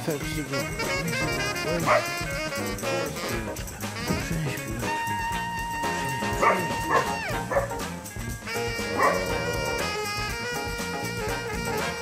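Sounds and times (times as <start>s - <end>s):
background music: 0.0s - 12.0s
puppy yipping: 1.8s - 2.2s, 6.1s - 7.8s, 8.8s - 9.9s.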